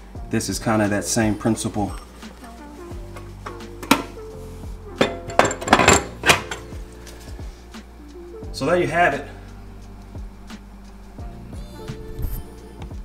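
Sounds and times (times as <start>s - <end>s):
soft background music: 0.0s - 13.0s
metal clinks and knocks: 5.0s - 6.8s.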